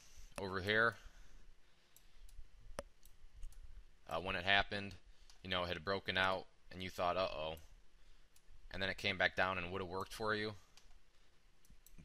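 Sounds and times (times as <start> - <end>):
computer mouse clicks: 1.9 - 3.7, 11.6 - 12.0.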